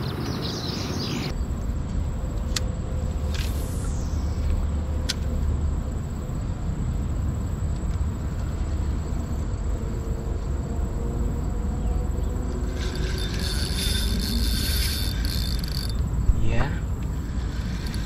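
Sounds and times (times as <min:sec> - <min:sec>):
high insect buzz: 0:00.7 - 0:06.7, 0:08.5 - 0:18.0.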